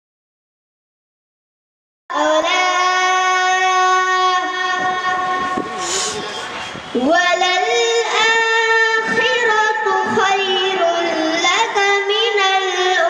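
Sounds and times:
boy chanting into a microphone: 0:02.1 - 0:13.0.

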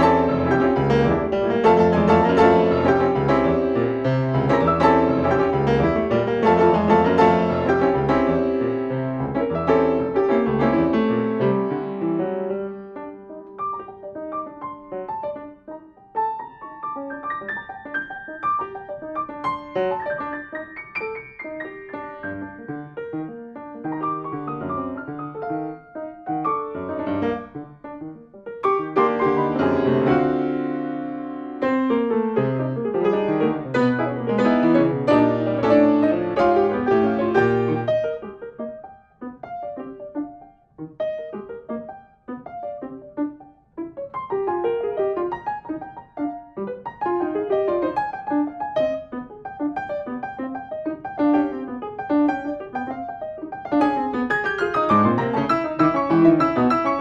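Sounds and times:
grand piano playing: 0:00.0 - 0:57.0.

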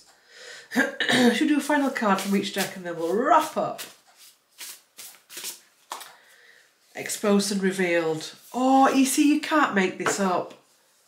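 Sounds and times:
cards being shuffled: 0:02.2 - 0:06.2.

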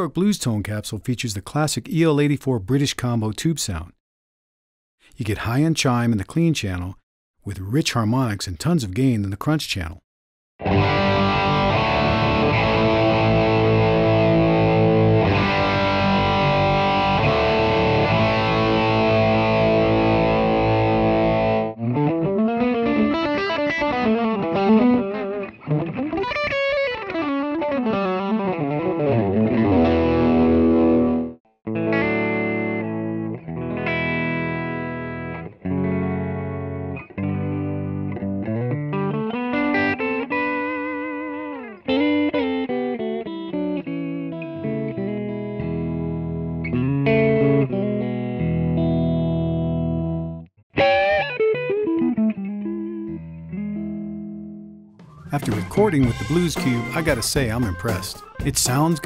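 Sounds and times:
distorted electric guitar: 0:10.6 - 0:59.0.

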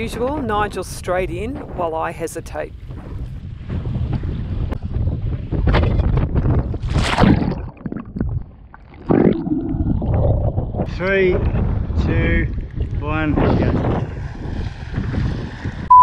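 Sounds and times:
wind rumbling on microphone: 0:00.0 - 0:16.0
sea water splashing and sloshing: 0:06.5 - 0:10.9
loud splash: 0:06.8 - 0:10.7.

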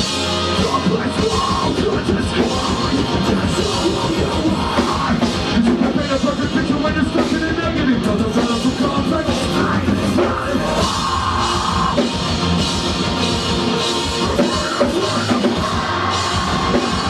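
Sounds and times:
fast drumming: 0:00.0 - 0:17.0
heavy guitars: 0:00.0 - 0:17.0
live metal band playing: 0:00.0 - 0:17.0
vocals: 0:00.0 - 0:17.0.

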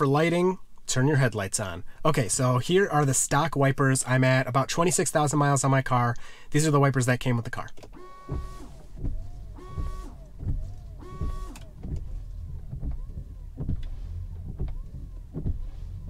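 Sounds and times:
windshield wipers squeaking on glass: 0:07.8 - 0:16.0
washer pump whining and spraying: 0:08.0 - 0:16.0.

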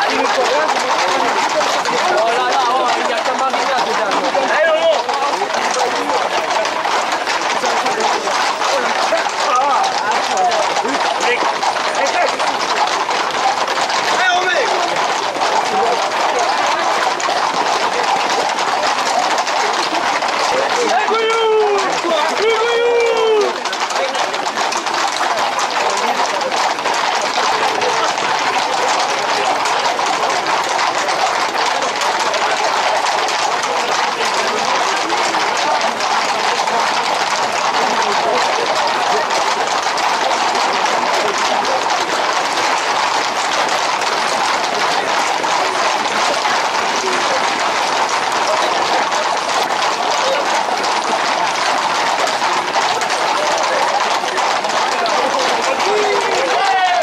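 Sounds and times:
crowd shouting: 0:00.0 - 0:57.0
horse hooves clattering on asphalt: 0:00.0 - 0:57.0
loud shouted call: 0:00.0 - 0:57.0.

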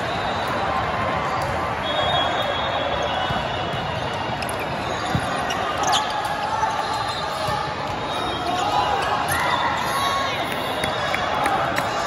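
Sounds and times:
voices and chatter: 0:00.0 - 0:12.0
sneakers squeaking on court floor: 0:01.3 - 0:09.1.

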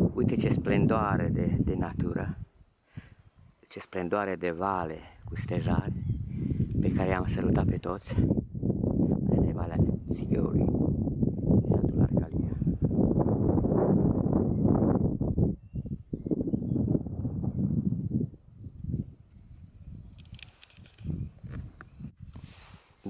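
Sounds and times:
crickets trilling: 0:00.0 - 0:23.0
soft rustles: 0:20.1 - 0:23.0.

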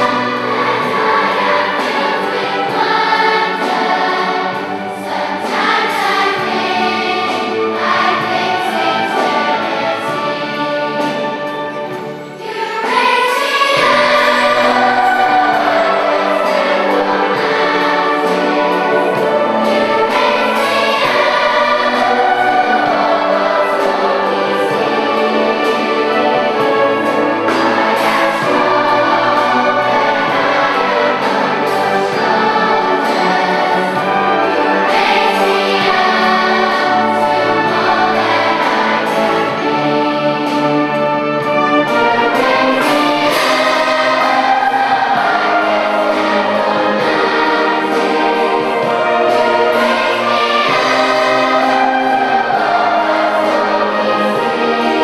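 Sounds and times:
choir singing: 0:00.0 - 0:55.0
orchestra strings and woodwinds: 0:00.0 - 0:55.0
violins and harps: 0:00.0 - 0:55.0.

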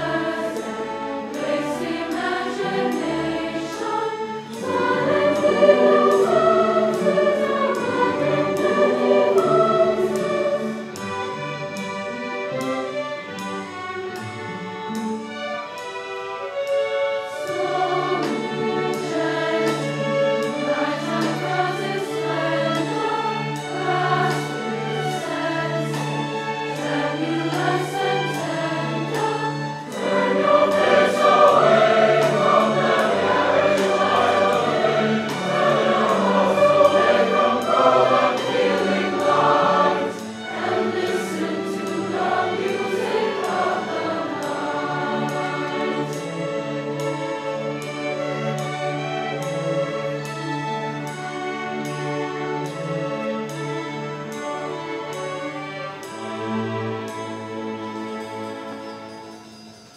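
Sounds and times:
youth choir singing: 0:00.0 - 0:11.5, 0:17.3 - 0:49.5
string orchestra: 0:00.0 - 0:59.9.

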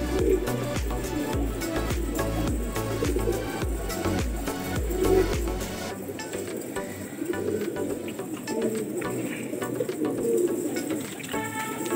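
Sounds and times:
pigeons cooing: 0:00.0 - 0:11.9.

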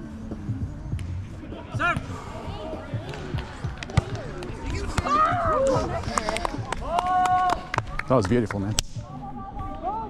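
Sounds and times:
faint players' voices: 0:00.3 - 0:10.0.

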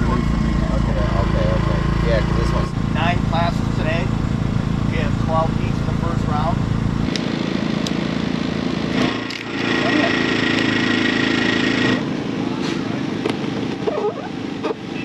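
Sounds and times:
people talking: 0:00.0 - 0:04.2, 0:04.9 - 0:06.6, 0:09.7 - 0:10.3
small engines droning: 0:00.0 - 0:15.0.

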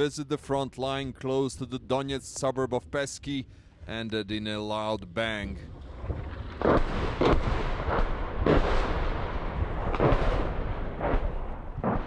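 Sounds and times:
continuous low rumble: 0:00.0 - 0:12.0
echoing rocket fire bangs: 0:06.0 - 0:12.0.

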